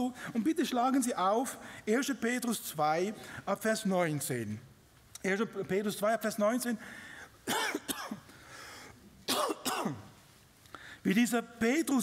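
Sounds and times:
man clearing his throat: 0:07.4 - 0:08.3, 0:09.3 - 0:10.1.

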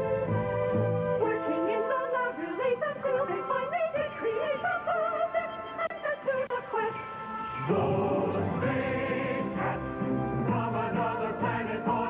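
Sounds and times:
backing music with held chords: 0:00.0 - 0:12.0.

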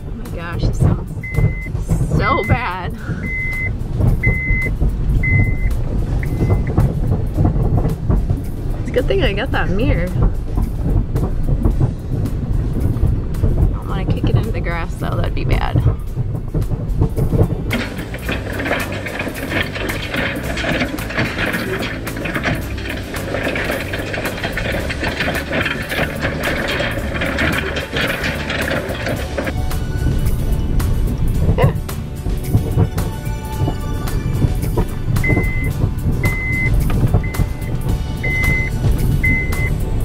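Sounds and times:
vehicle engine and road rumble: 0:00.0 - 0:40.0
hay rake metallic clattering: 0:16.6 - 0:40.0.

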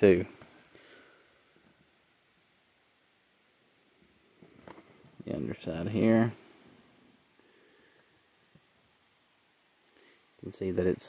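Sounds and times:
faint background hiss: 0:00.0 - 0:11.0
faint ticks: 0:09.7 - 0:10.5.

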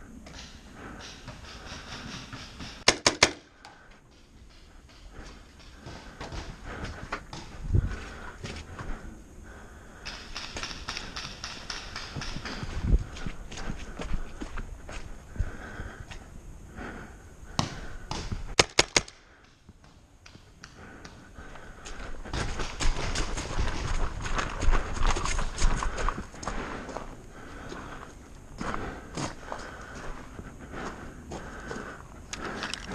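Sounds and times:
running footsteps on grass: 0:10.2 - 0:15.7, 0:20.8 - 0:32.9.

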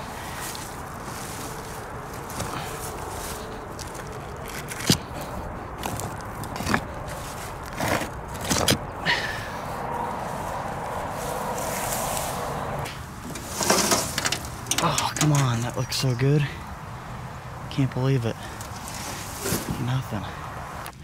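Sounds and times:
rustling through wet grass: 0:00.0 - 0:08.6, 0:09.5 - 0:15.6, 0:18.4 - 0:20.0
stones shifted by hand: 0:05.8 - 0:08.8, 0:13.3 - 0:15.5, 0:18.8 - 0:19.9.

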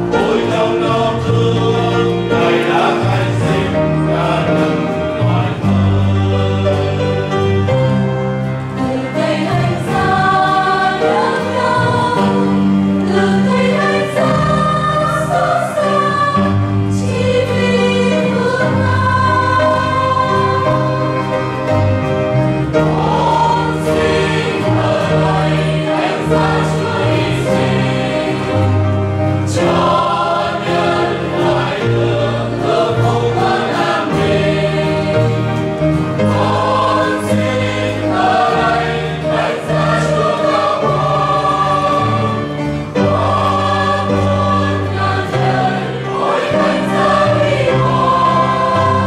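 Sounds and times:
guitar: 0:00.0 - 0:49.0
mixed choir singing a hymn: 0:00.0 - 0:49.0
piano: 0:00.0 - 0:49.0.

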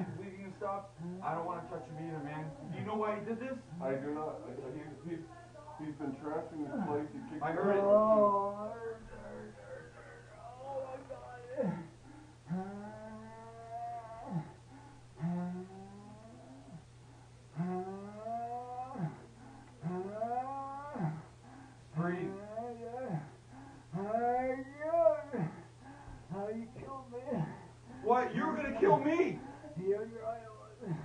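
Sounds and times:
man moaning in pain: 0:06.6 - 0:14.6, 0:17.6 - 0:21.3, 0:22.2 - 0:25.7, 0:26.3 - 0:31.0.

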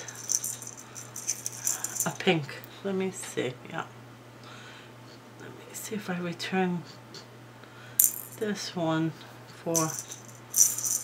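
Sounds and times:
beads clicking in metal tin: 0:00.0 - 0:02.2, 0:08.0 - 0:08.4, 0:09.8 - 0:11.0.

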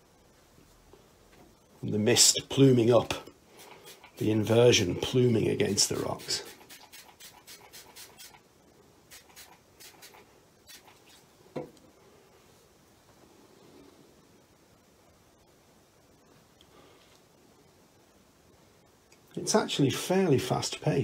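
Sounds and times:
spray bottle squirting: 0:03.6 - 0:04.3, 0:05.9 - 0:08.4, 0:09.1 - 0:11.2.

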